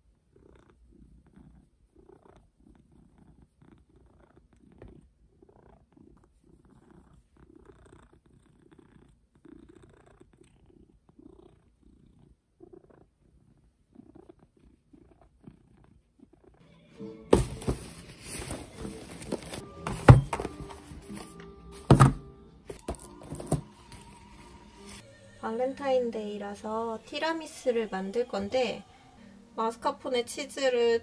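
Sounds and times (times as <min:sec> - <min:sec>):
cat purring softly: 0:00.0 - 0:16.8.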